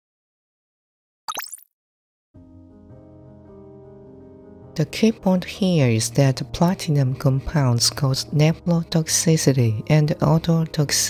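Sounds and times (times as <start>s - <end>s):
rising pop with sparkly shimmer: 1.3s - 1.6s.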